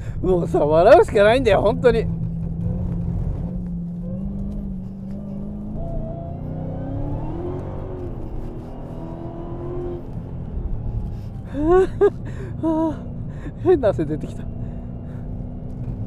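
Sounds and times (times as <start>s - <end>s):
car engine drone: 0.0s - 16.0s
low road rumble: 0.0s - 16.0s.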